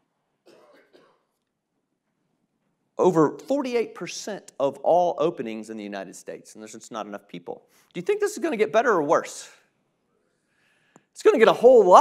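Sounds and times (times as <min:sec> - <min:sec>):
faint short cough: 0:00.4 - 0:01.4.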